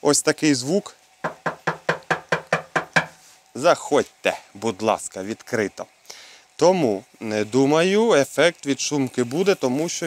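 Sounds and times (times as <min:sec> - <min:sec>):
knocking on sheet metal: 0:01.2 - 0:03.2.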